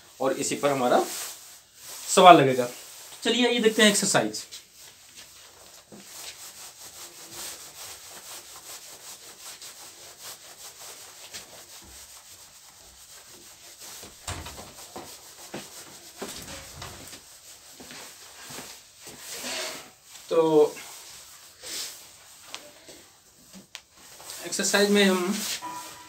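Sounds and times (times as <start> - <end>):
duster rubbing whiteboard: 0.4 - 26.0.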